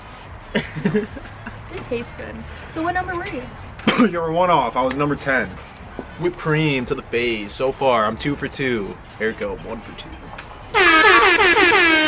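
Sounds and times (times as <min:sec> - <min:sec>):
air horn blasts: 0:10.7 - 0:12.0.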